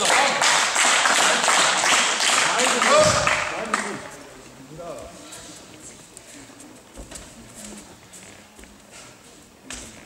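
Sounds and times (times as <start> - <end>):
crowd clapping and cheering: 0.0 - 4.0.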